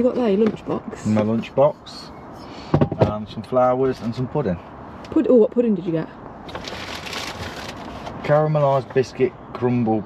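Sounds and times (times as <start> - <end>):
packaging rustling and crinkling: 6.5 - 8.2.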